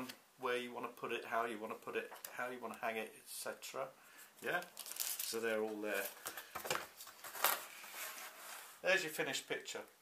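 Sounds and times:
bubble wrap rustling and scraping: 4.4s - 8.9s.

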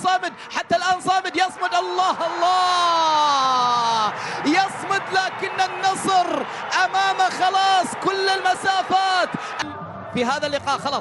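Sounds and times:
commentator shouting: 0.0s - 11.0s.

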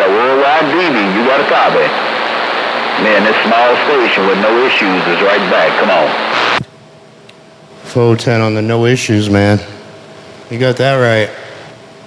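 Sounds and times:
radio static hiss: 0.0s - 6.7s
faint low hiss: 0.0s - 11.8s.

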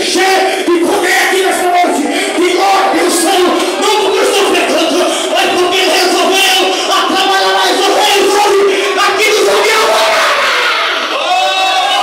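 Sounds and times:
congregation crying out: 0.0s - 12.0s
preacher shouting over loudspeaker: 0.0s - 12.0s.

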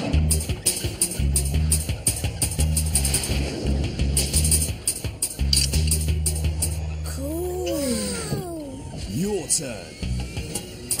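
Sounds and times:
upbeat music with pulsing bass: 0.0s - 8.5s.

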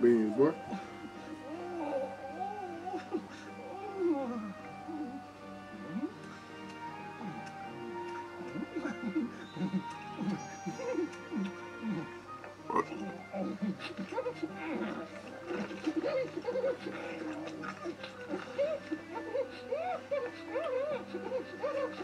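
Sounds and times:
light background music: 0.0s - 22.0s.

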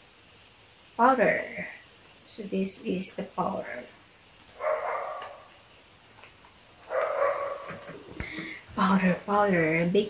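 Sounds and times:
animal calling: 4.6s - 5.5s.

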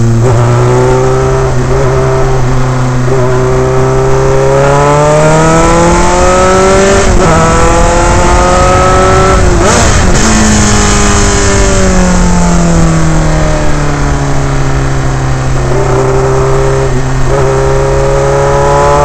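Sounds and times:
wind rush: 0.0s - 18.6s
racing engine at high revs: 0.0s - 19.0s.

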